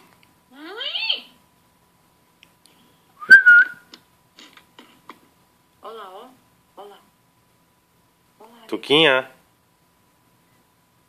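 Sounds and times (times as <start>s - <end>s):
loud high whistle: 3.2s - 3.9s.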